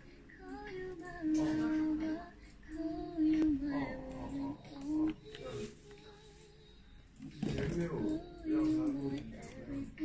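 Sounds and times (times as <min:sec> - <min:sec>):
high voice singing unaccompanied: 0:00.0 - 0:10.0.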